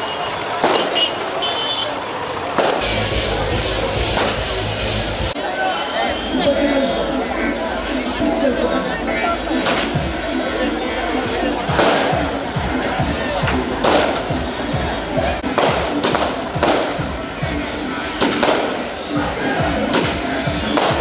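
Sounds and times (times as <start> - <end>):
crowd: 0.0 - 21.0
sharp crashing hits: 2.6 - 4.8.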